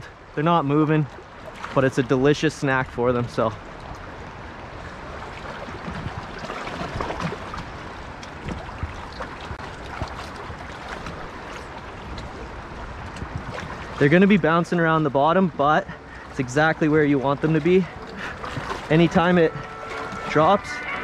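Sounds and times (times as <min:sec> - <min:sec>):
river water rushing: 0:00.0 - 0:21.0
small water splashes: 0:00.1 - 0:21.0.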